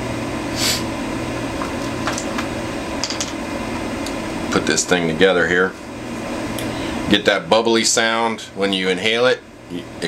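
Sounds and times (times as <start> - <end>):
steady background hum: 0.0 - 10.0.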